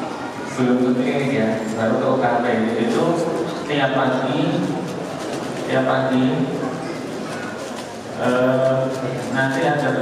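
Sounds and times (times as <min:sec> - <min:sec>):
man speaking into a microphone: 0:00.5 - 0:05.0, 0:05.6 - 0:06.8, 0:08.1 - 0:10.0.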